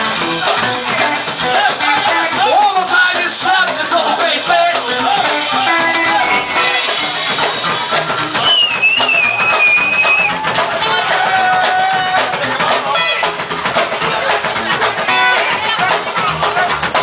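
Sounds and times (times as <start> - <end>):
rockabilly band playing: 0.0 - 17.0.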